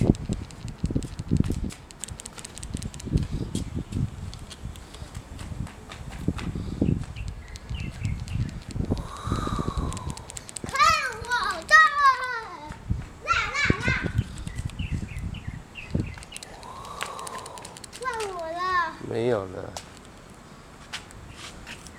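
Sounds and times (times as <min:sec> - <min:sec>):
low rumbling noise: 0:08.0 - 0:10.5
child squealing and calling: 0:10.7 - 0:14.2.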